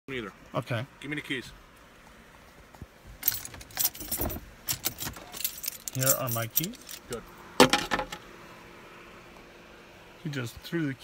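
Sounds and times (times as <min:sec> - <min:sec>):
car keys jingling: 0:03.2 - 0:07.3.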